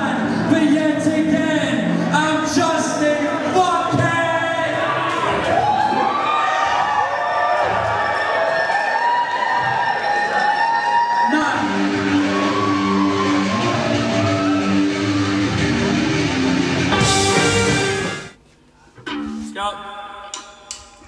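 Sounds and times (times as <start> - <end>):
audience cheering and whooping: 4.7 - 18.1
electric guitar playing chords: 11.6 - 18.4.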